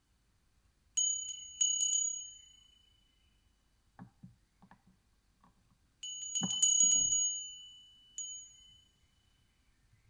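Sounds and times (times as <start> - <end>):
small metal chime ringing: 1.0 - 3.4, 6.0 - 9.5.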